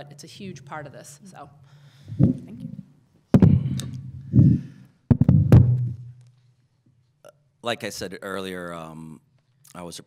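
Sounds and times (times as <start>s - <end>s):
microphone handling knocks: 2.1s - 2.8s, 3.4s - 6.3s.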